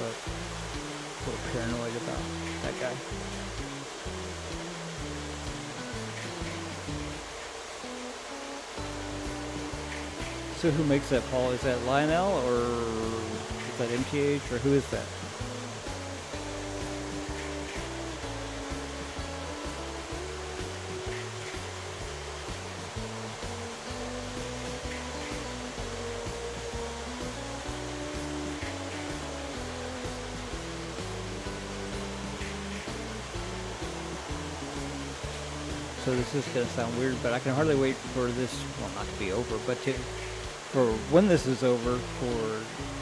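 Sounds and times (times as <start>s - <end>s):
music with low notes: 0.0s - 43.0s.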